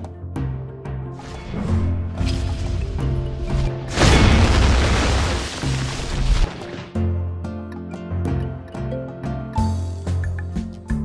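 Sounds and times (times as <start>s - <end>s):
background music with bass: 0.0s - 11.0s
loud crash: 3.8s - 6.9s.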